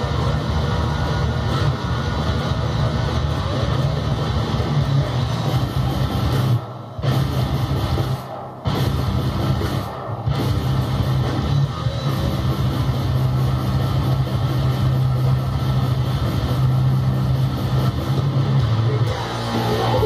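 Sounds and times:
heavy electric guitar riff: 0:00.0 - 0:20.0.

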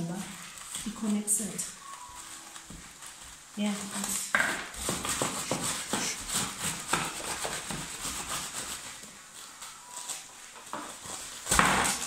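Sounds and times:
plastic sheeting crinkling: 0:00.0 - 0:12.0
rolling pin rolling over plastic: 0:00.0 - 0:12.0.

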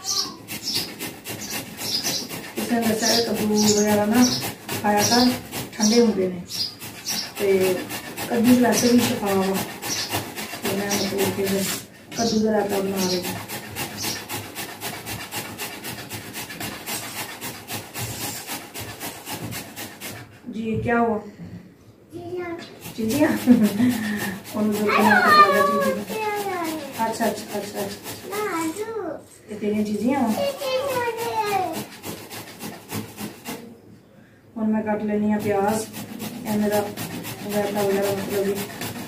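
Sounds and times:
vegetable grated on metal grater: 0:00.0 - 0:20.7, 0:22.6 - 0:29.0, 0:29.6 - 0:33.7, 0:34.8 - 0:39.0.

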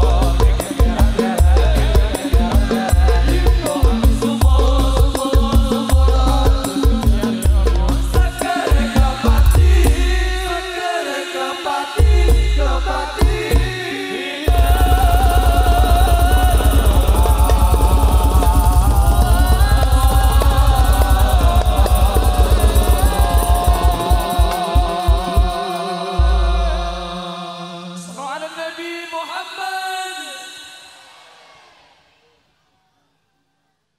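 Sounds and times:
live band playing fast dance song: 0:00.0 - 0:10.2, 0:14.5 - 0:26.1
fast drum and bass beat: 0:00.0 - 0:10.4, 0:12.0 - 0:13.8, 0:14.5 - 0:26.6
religious chant with music: 0:00.0 - 0:33.7.

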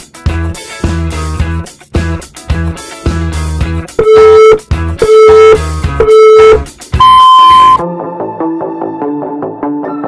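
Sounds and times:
guitar background music: 0:00.0 - 0:10.0
electronic timer beeps: 0:04.0 - 0:07.8.

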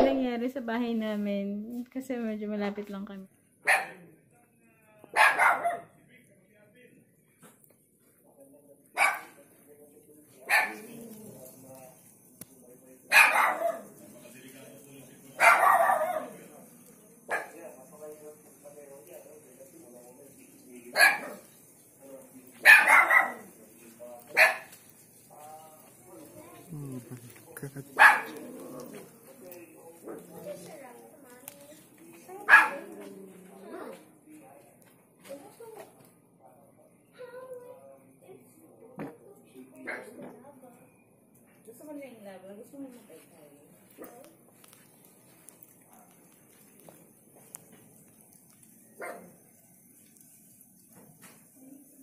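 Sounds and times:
people talking: 0:00.0 - 0:03.3, 0:25.3 - 0:40.9, 0:41.6 - 0:44.4
dog barking loudly: 0:03.7 - 0:04.0, 0:05.2 - 0:05.9, 0:09.0 - 0:09.3, 0:10.5 - 0:10.9, 0:13.1 - 0:13.9, 0:15.4 - 0:16.4, 0:21.0 - 0:21.4, 0:22.6 - 0:23.5, 0:24.3 - 0:24.8, 0:27.9 - 0:28.7, 0:32.4 - 0:33.0
people's voices: 0:25.3 - 0:34.1.

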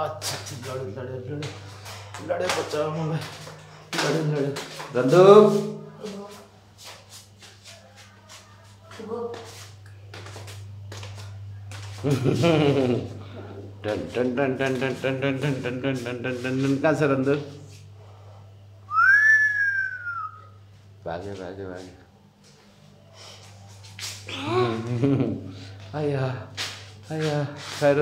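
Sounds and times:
steady low hum: 0:00.0 - 0:28.0
soft rustling and shuffling: 0:00.4 - 0:12.1, 0:20.7 - 0:24.3
person whistling: 0:18.9 - 0:20.6.

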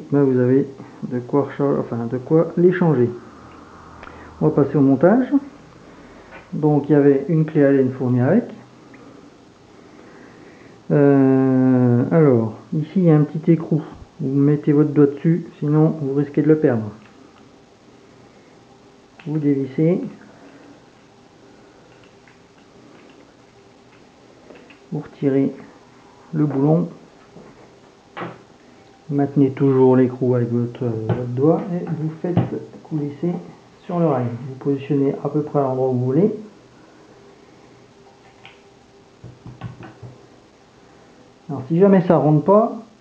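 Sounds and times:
low room hum: 0:00.0 - 0:43.0.

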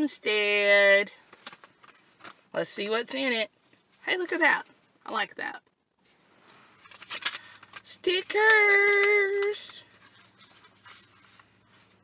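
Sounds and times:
paper rustling: 0:06.1 - 0:12.0.

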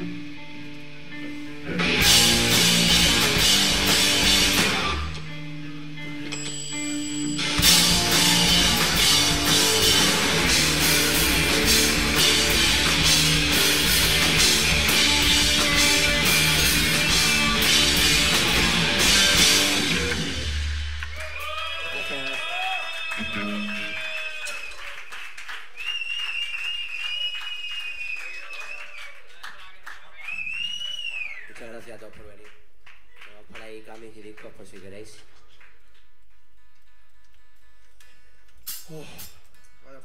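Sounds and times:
live rock band playing: 0:00.0 - 0:21.4
audience clapping: 0:08.0 - 0:15.7, 0:19.6 - 0:37.4
audience calls: 0:19.6 - 0:31.3.

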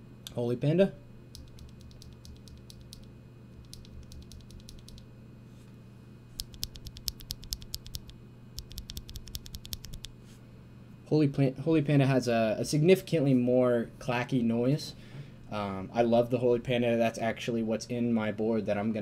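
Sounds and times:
keyboard switch clicking: 0:01.4 - 0:05.0, 0:06.4 - 0:10.1.

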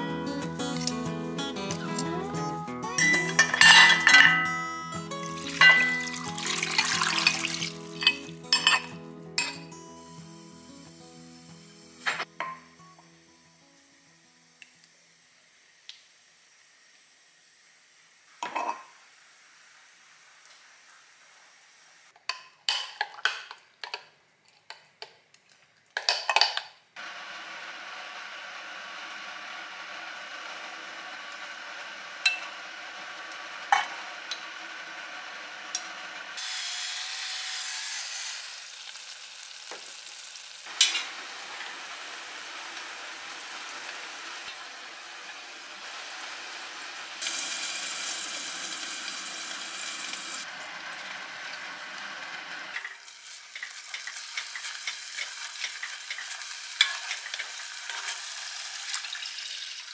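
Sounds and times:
food sizzling in oil: 0:00.4 - 0:22.1, 0:27.0 - 0:59.9.

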